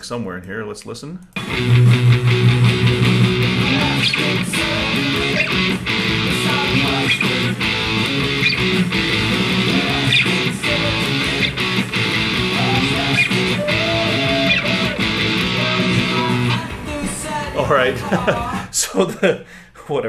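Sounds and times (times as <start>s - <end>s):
electric guitar strumming: 1.4s - 18.6s.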